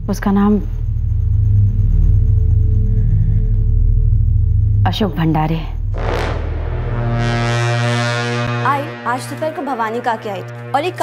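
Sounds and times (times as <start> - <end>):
low horn-like drone: 5.9 - 11.0.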